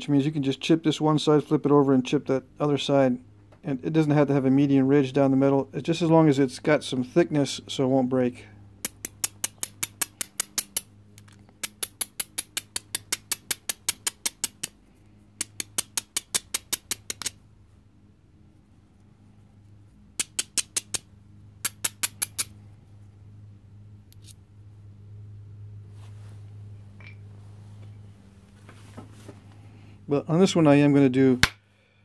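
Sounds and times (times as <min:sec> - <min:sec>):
faint handling sounds: 0:25.8 - 0:30.1.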